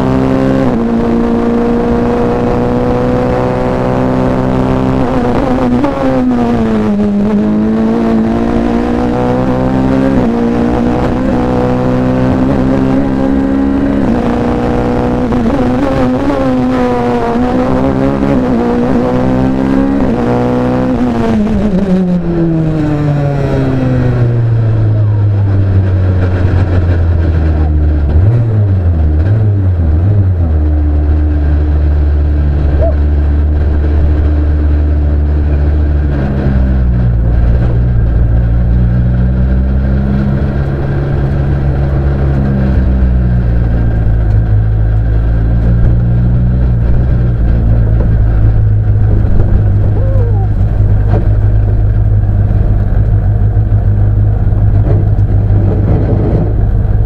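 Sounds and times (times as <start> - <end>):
race car engine revs and drone: 0.0 - 57.0.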